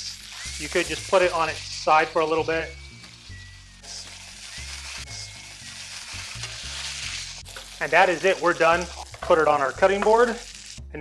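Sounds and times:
fish searing in hot oil: 0:00.0 - 0:11.0.

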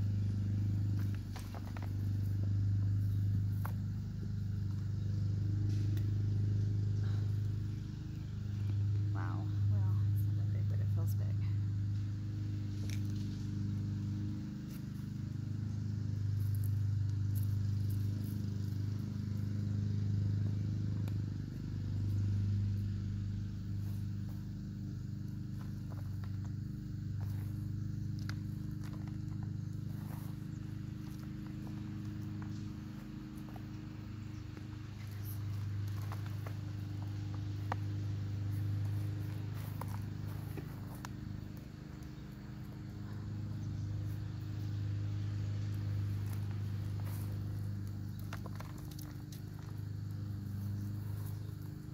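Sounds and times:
low machine hum: 0:00.0 - 0:51.9
hands digging through potting soil: 0:27.2 - 0:41.4.

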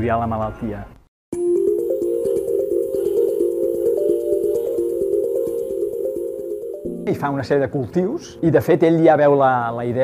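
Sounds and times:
background music tones: 0:01.3 - 0:10.0.

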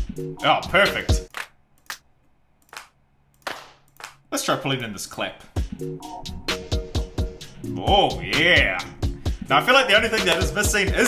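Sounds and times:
electronic clap samples: 0:01.3 - 0:02.0, 0:02.7 - 0:04.2, 0:10.2 - 0:10.8.

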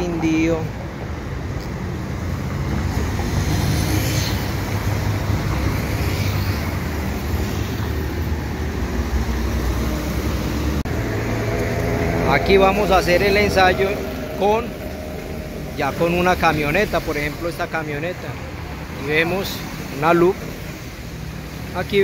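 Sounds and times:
low engine rumble: 0:08.5 - 0:19.3.

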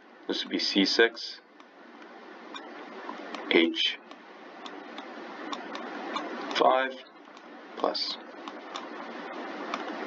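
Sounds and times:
stylus clicks: 0:08.4 - 0:08.9.

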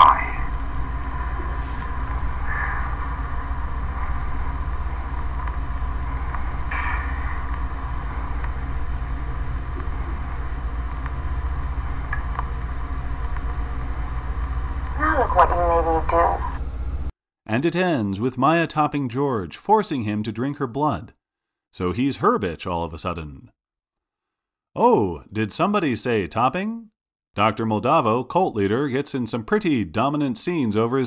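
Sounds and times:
low droning hum: 0:00.0 - 0:17.1.

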